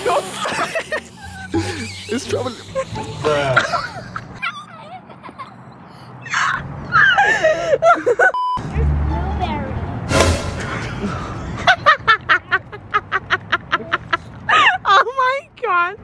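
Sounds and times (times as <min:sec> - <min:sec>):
child laughing: 0:00.0 - 0:08.3
voices talking: 0:01.3 - 0:06.5
steady beep: 0:08.4 - 0:08.6.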